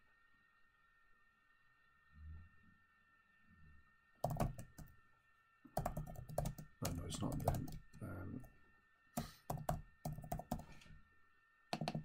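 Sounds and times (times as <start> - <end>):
typing on computer keyboard: 4.2 - 4.9, 5.8 - 8.0, 9.5 - 10.7, 11.8 - 12.0.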